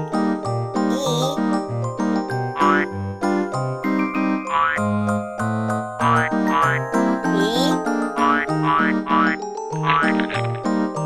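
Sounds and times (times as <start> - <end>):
bouncy ragtime tune: 0.8 - 10.6.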